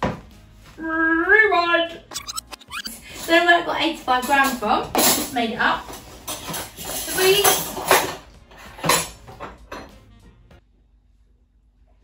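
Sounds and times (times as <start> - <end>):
cutlery clattering in a drawer: 4.2 - 9.9.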